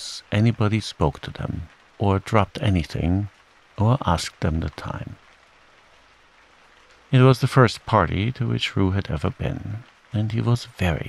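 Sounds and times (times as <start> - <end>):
gentle rain: 0.0 - 11.0.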